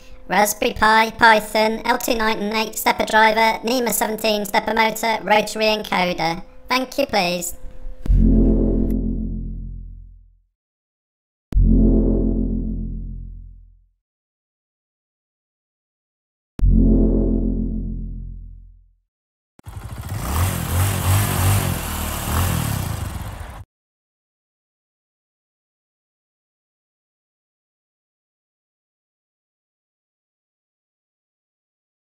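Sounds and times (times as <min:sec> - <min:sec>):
motor running: 0:19.6 - 0:23.6.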